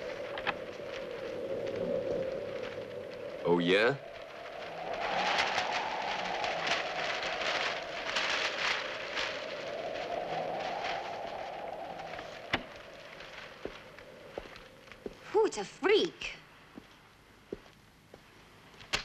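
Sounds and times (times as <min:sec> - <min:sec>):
newspapers rustling and flapping: 0:00.0 - 0:15.5
wind whooshing through room: 0:00.0 - 0:15.8.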